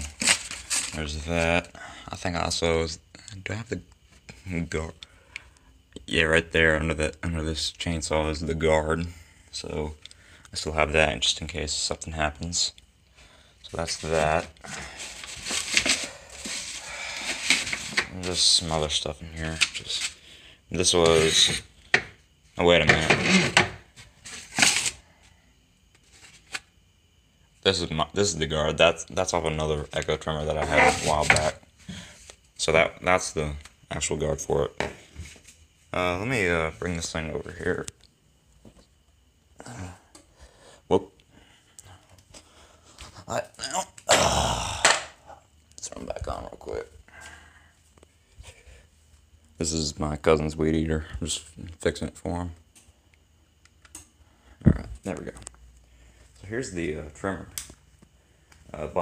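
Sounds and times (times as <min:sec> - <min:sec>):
paper rustling: 0:00.0 - 0:01.0.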